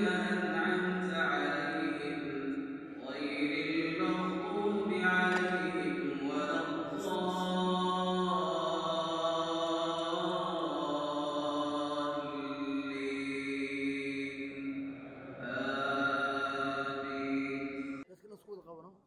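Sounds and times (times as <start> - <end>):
man chanting melodic recitation: 0.0 - 18.0.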